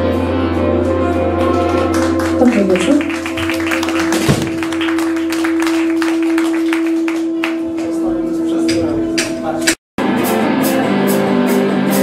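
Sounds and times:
sharp percussive hits: 8.6s - 9.8s.

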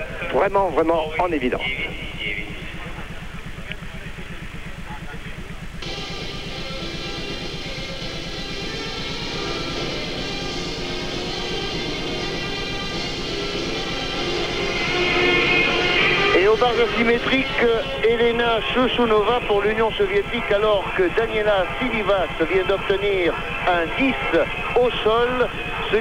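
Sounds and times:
music playing: 0.0s - 26.0s
steady low hum: 0.0s - 26.0s.

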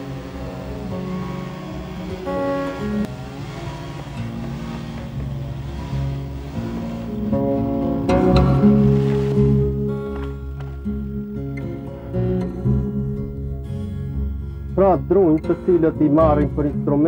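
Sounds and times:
plucked string folk melody: 0.0s - 17.0s
strummed string instrument: 0.0s - 17.0s.

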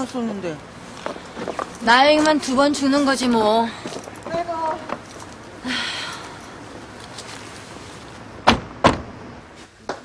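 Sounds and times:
car doors slamming: 8.4s - 9.2s.

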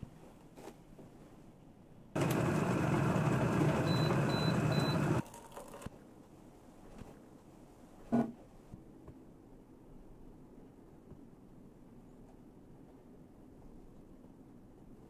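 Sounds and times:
kettle boiling: 2.2s - 5.9s
short high beeps: 3.9s - 5.0s.

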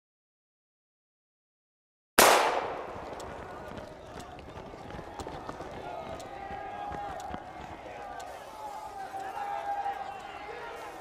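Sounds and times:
wristwatch ticking: 5.0s - 11.0s.

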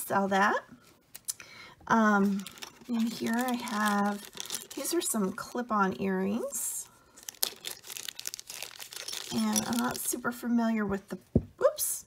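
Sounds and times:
plastic bag crinkling: 2.1s - 10.4s.

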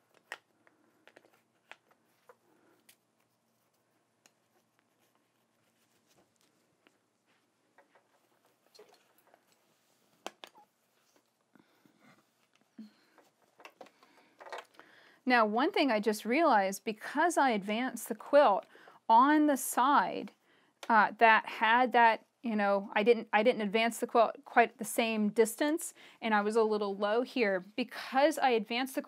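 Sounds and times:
fabric rustling: 1.3s - 13.6s.

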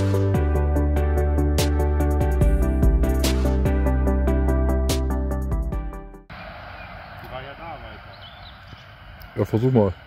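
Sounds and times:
electronic music with steady beat: 0.0s - 6.3s.

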